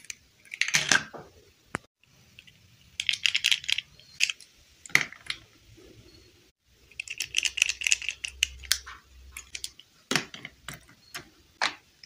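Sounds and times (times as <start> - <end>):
plastic toy pieces clicking: 2.4 - 4.5, 6.9 - 8.8.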